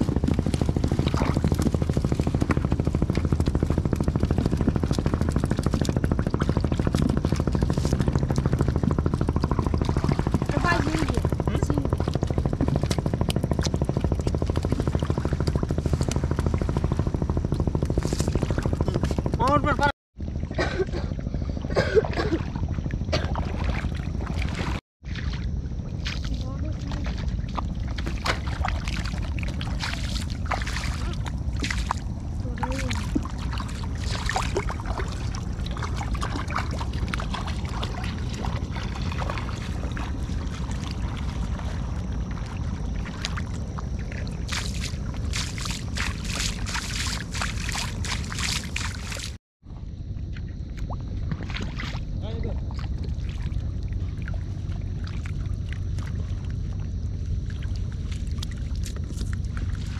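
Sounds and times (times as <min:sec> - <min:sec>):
small engine chugging: 0:00.0 - 0:19.9
wind buffeting microphone: 0:00.0 - 0:24.8.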